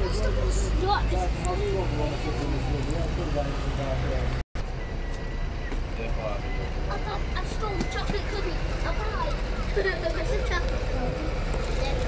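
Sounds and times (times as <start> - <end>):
buses idling: 0.0 - 12.0.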